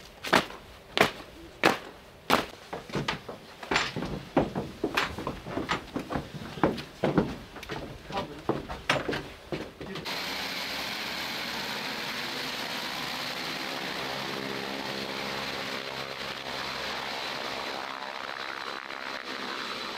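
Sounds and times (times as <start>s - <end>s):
sharp knocks: 0.3s - 10.1s
turboprop engines running: 3.6s - 19.9s.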